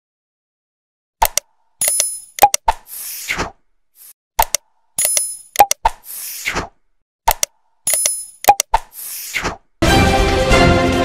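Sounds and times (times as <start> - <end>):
quick pops or clicks: 1.2 - 3.6, 4.4 - 9.6
theme music: 9.8 - 11.0.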